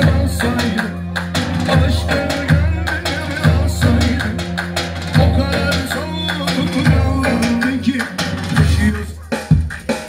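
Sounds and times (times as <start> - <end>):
electronic keyboard dance music: 0.0 - 10.0.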